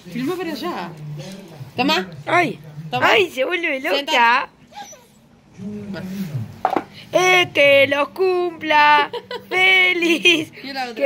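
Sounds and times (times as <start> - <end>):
plastic bowl clacking on concrete: 6.6 - 6.9.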